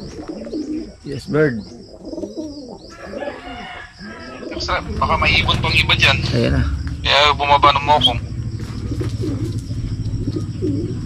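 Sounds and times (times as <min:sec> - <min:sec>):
pigeons cooing: 0:00.0 - 0:11.0.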